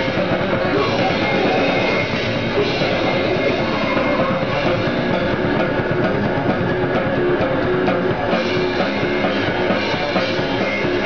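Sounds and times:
goregrind band playing: 0.0 - 11.0.

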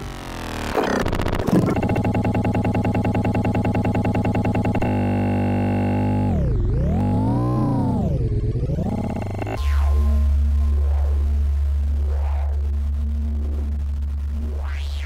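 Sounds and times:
electronic synthesizer music: 0.4 - 15.0.

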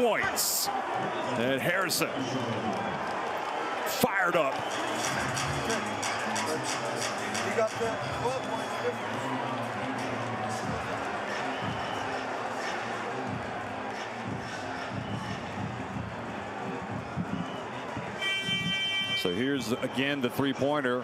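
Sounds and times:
steady buzzer tone: 18.2 - 19.3.

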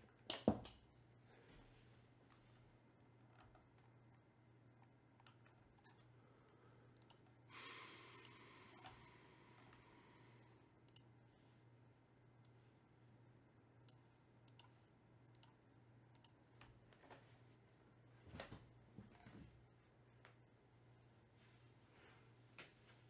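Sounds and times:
steady low hum: 0.0 - 23.0
soft hiss: 5.8 - 11.8.

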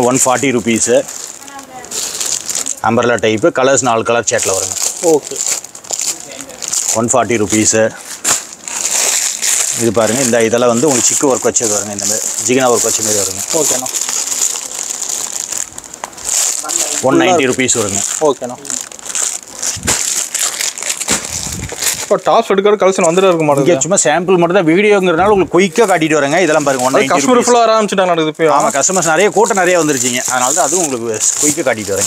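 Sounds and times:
plastic packaging crinkling: 0.0 - 23.7, 25.6 - 32.0.

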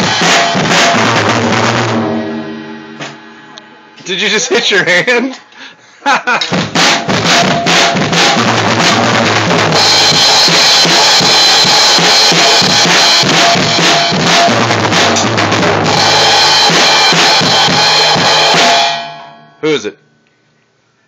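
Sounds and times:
drum kit beat: 0.0 - 5.2, 6.2 - 19.6
cymbals ringing: 6.9 - 20.2.

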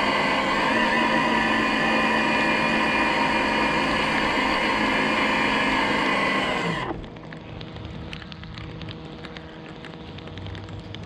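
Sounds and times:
road noise: 0.0 - 11.0
vehicle motor hum and whine: 0.0 - 11.0.

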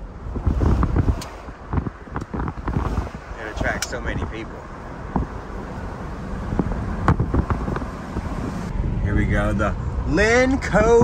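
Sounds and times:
tyre and wind rumble: 0.0 - 11.0.

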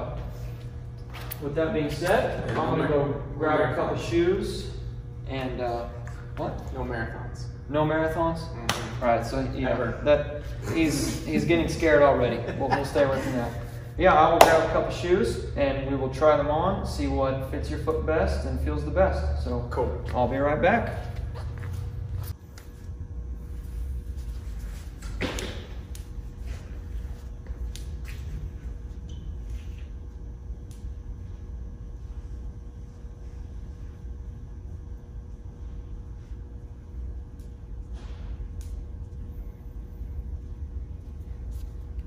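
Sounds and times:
low hum: 0.0 - 42.0.

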